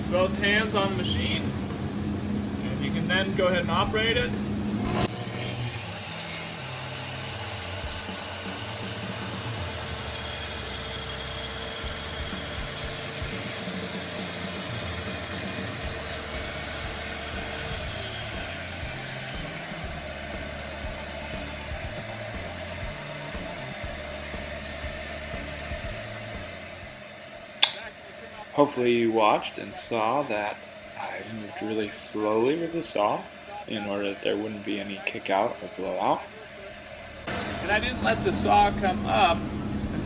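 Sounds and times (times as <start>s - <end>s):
saw motor low hum: 0.0s - 40.0s
track saw whining through wood: 0.0s - 40.0s.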